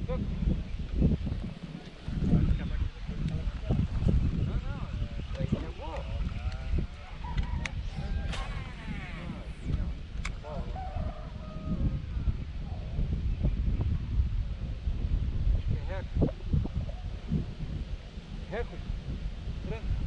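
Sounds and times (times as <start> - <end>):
wind buffeting microphone: 0.0 - 20.0.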